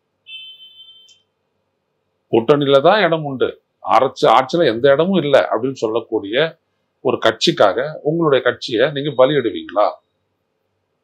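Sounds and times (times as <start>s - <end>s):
high-pitched beep: 0.3s - 1.2s.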